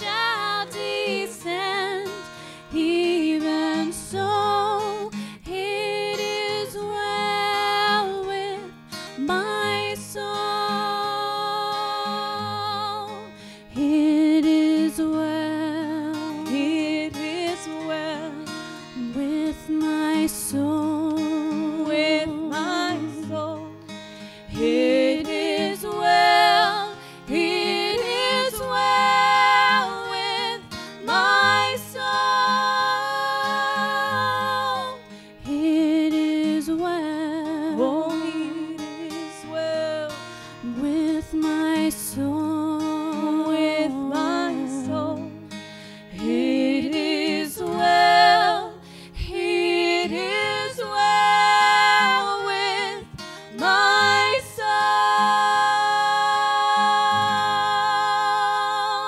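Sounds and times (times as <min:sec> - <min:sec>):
woman singing gospel song: 0:00.0 - 0:23.7, 0:24.5 - 0:45.4, 0:46.1 - 0:59.0
acoustic guitar chords: 0:00.0 - 0:59.0.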